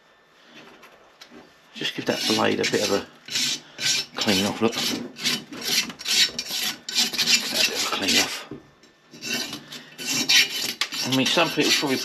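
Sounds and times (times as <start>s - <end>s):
rasping scrubbing of metal: 1.8s - 8.3s, 9.1s - 12.0s.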